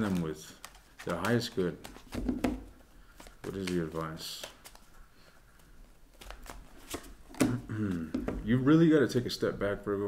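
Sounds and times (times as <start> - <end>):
man speaking: 0.0 - 1.9, 3.4 - 4.6, 8.0 - 10.0
cards being shuffled: 0.0 - 8.4.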